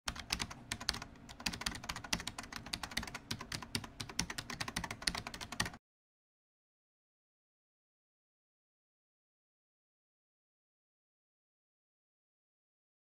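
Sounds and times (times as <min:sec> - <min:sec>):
rapid keyboard typing: 0:00.1 - 0:05.8.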